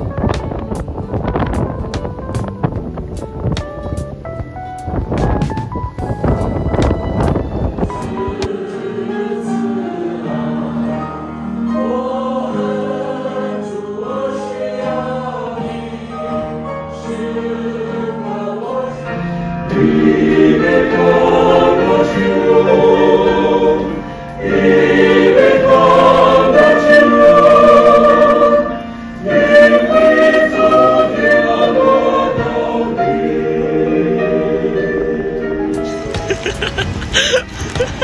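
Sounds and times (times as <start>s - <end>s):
wind on microphone: 0.0s - 8.5s
choir singing a hymn: 7.2s - 38.0s.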